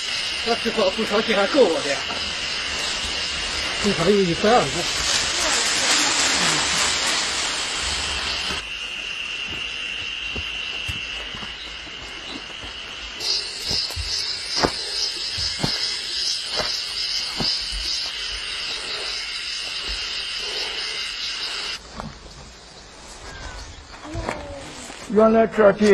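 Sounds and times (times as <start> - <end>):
insect high-pitched drone: 0.0 - 24.1
insect pulsing call: 0.0 - 25.0.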